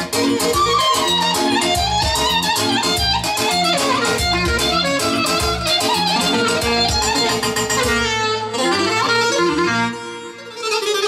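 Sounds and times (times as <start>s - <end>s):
bass beat on electronic keyboard: 0.0s - 10.4s
violin-like lead melody: 0.0s - 11.0s.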